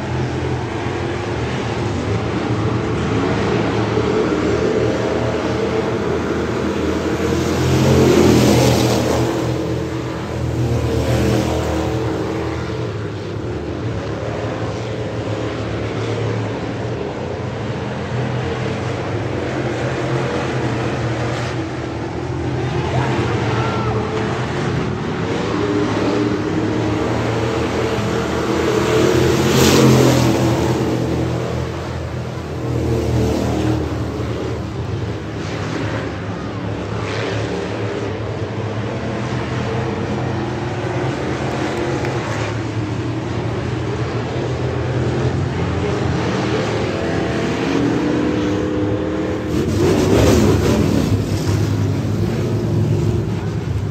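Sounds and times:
stock car engines racing: 0.0 - 53.9.

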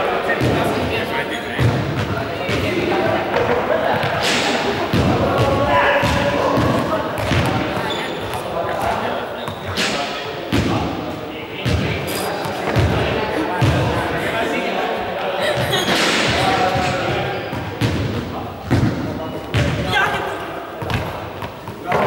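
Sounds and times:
voices echoing in hall: 0.0 - 22.0
balls thudding: 1.6 - 11.0, 15.6 - 19.9, 20.8 - 22.0.

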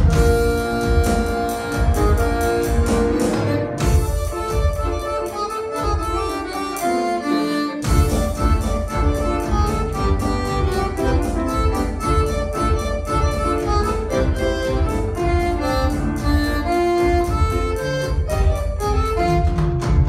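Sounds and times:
electric bass: 0.0 - 6.8, 7.8 - 20.0
accordion: 0.0 - 20.0
live band playing instrumental: 0.0 - 20.0.

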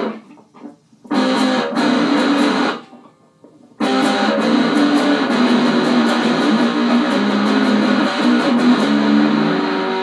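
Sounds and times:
electric guitar chord through amplifier: 1.1 - 2.8, 3.8 - 10.0.

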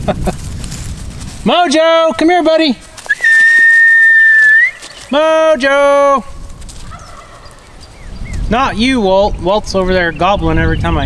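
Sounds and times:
person whistling high note: 3.1 - 4.9.

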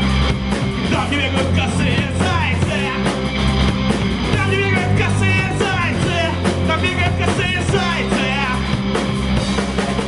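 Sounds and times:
rock band playing live: 0.0 - 10.0
man singing: 0.8 - 3.2, 4.3 - 8.8.

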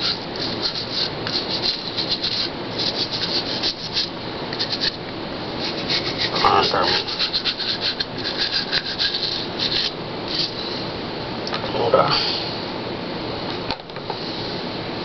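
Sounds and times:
brush scrubbing hard surface: 0.0 - 5.0, 5.6 - 10.7.

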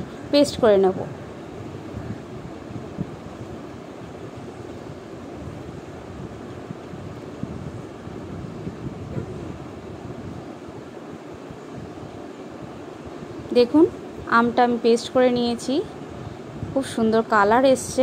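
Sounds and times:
steady rushing noise: 0.0 - 18.0.

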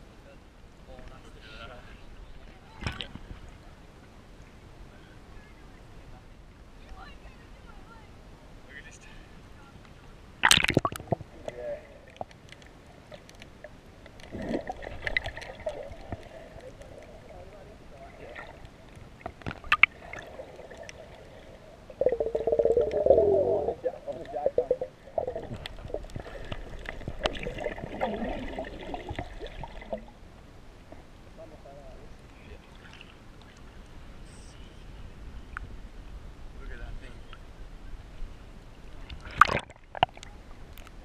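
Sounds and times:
water bubbling: 10.4 - 12.4, 14.2 - 30.2, 39.2 - 40.5
underwater gurgling: 10.4 - 30.2, 39.1 - 41.0.

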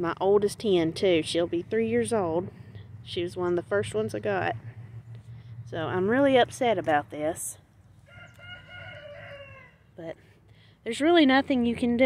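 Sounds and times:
chicken long call: 8.1 - 9.9.

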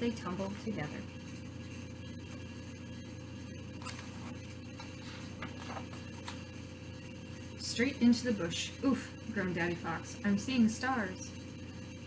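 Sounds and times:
steady low hum: 0.0 - 12.0
paper pages rustling: 3.8 - 6.5.

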